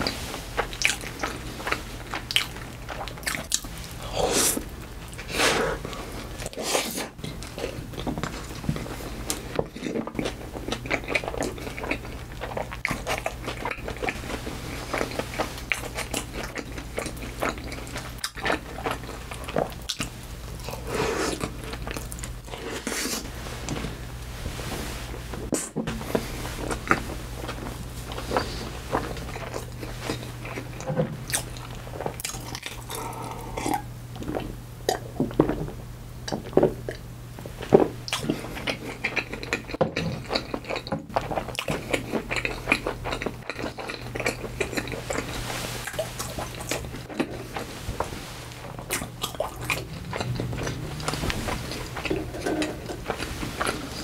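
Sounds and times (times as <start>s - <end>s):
close chewing with mouth smacks: 0.0s - 22.8s, 26.7s - 35.1s, 38.1s - 47.8s, 48.6s - 54.0s.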